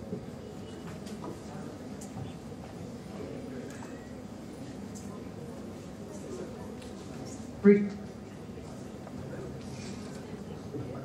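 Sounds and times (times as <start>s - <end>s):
murmur of large hall: 0.0s - 11.0s.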